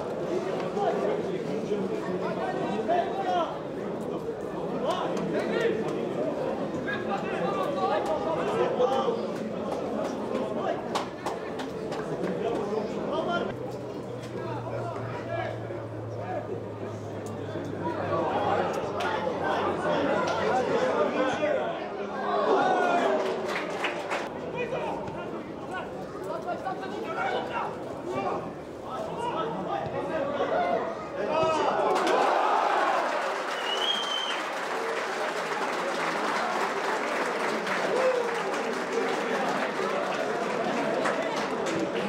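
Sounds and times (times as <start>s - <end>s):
crowd applauding: 8.0s - 12.9s, 22.7s - 24.3s, 31.9s - 42.0s
crowd shouting: 17.8s - 24.8s, 29.1s - 34.3s, 35.7s - 42.0s
short high whistle: 33.6s - 34.4s.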